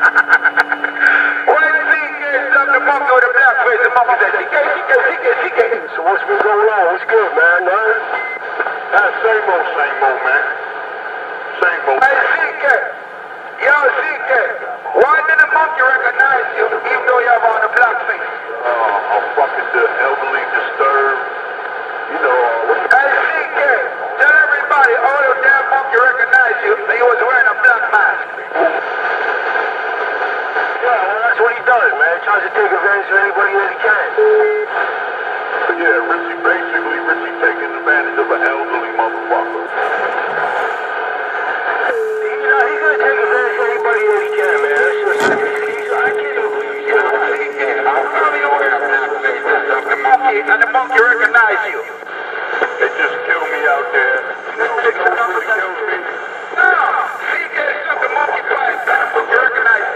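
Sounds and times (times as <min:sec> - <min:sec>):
steady low tone: 0:00.0 - 0:04.0, 0:35.6 - 0:56.6
muffled voices through small speaker: 0:00.0 - 0:59.9.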